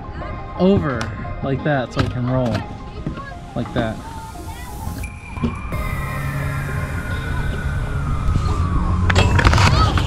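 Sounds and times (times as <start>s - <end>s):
background music: 0.0s - 10.0s
siren winding down: 4.0s - 10.0s.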